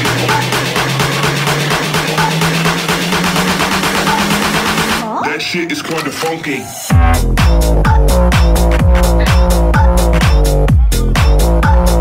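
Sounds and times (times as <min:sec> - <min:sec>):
fast pulsing electronic beat: 0:00.0 - 0:05.0, 0:06.9 - 0:12.0
rising low synth tone: 0:06.9 - 0:10.7.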